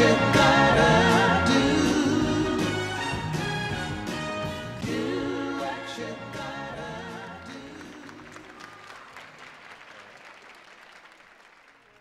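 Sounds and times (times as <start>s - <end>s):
audience applause: 7.6s - 12.0s.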